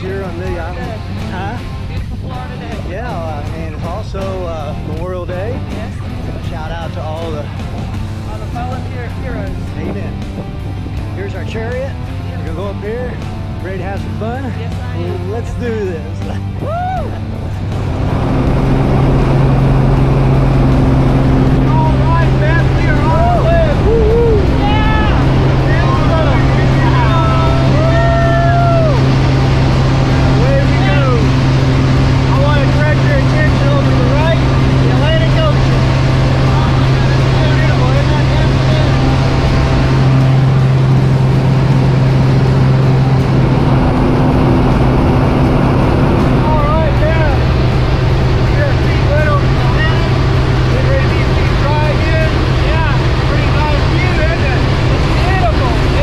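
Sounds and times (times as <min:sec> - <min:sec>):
people talking: 0:00.0 - 0:07.6, 0:08.2 - 0:10.3, 0:11.1 - 0:56.0
propeller airplane engine drone: 0:00.0 - 0:56.0
wind rushing: 0:16.4 - 0:56.0.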